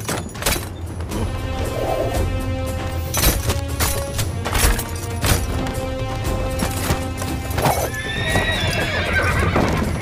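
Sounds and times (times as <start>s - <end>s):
dramatic background music: 0.0s - 10.0s
horse neighing: 7.6s - 10.0s.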